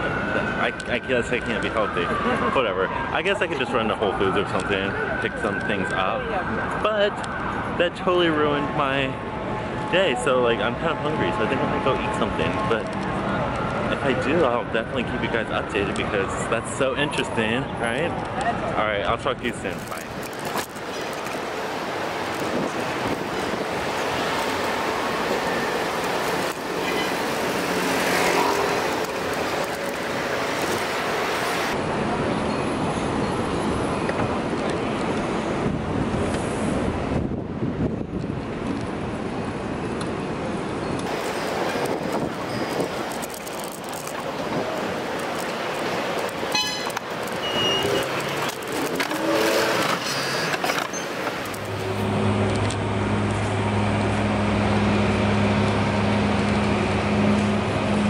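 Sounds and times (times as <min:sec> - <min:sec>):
street traffic: 0:00.0 - 0:58.0
wind on microphone: 0:19.9 - 0:25.6, 0:34.4 - 0:39.4, 0:41.0 - 0:47.2.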